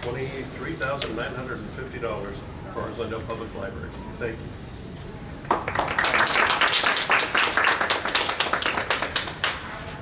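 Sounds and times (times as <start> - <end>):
small audience applauding: 5.4 - 9.9.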